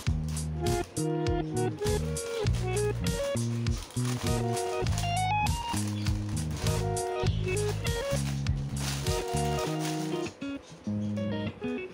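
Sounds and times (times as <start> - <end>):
plucked guitar melody: 0.0 - 11.9.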